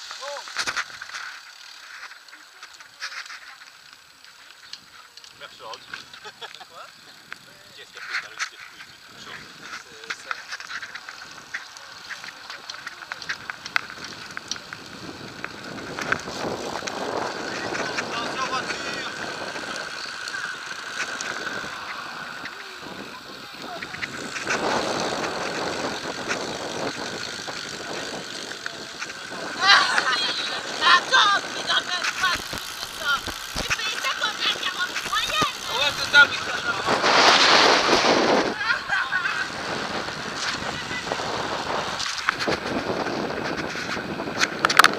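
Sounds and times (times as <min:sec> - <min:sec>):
bicycle tyres on tarmac: 0:00.0 - 0:44.9
indistinct riders' voices: 0:00.0 - 0:44.9
wind rushing over microphone: 0:13.2 - 0:44.9.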